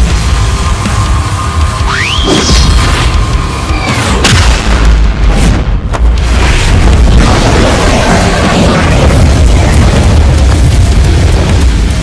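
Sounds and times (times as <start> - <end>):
dramatic music score: 0.0 - 12.0
heavy booming blast with rumble: 4.2 - 12.0.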